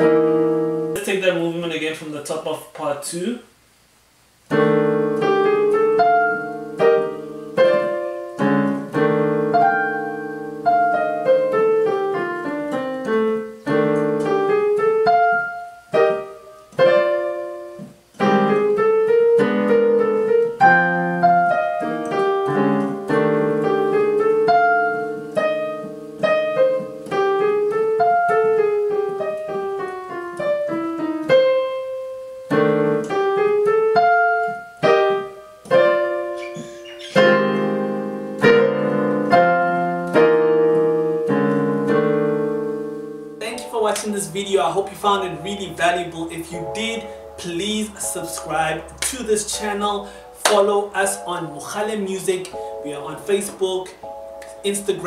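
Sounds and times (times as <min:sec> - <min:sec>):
digital piano playing: 0:00.0 - 0:02.4, 0:04.5 - 0:55.0.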